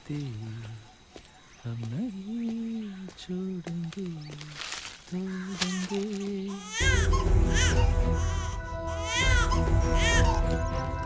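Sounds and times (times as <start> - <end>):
newborn baby crying: 5.3 - 10.5
background music with held notes: 6.8 - 11.0.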